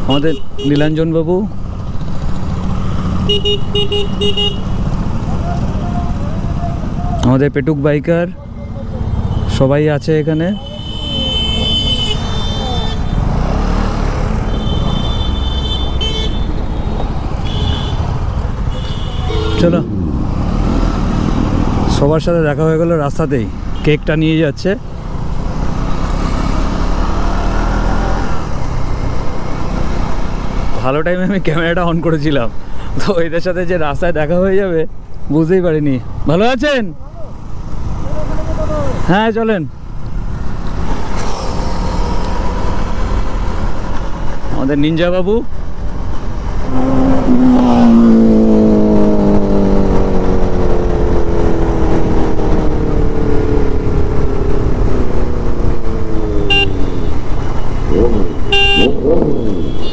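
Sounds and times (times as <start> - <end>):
road noise: 0.0 - 59.9
motorcycle engine rumbling: 1.2 - 31.7, 37.0 - 59.9
man talking and calling: 18.7 - 20.3, 57.9 - 59.9.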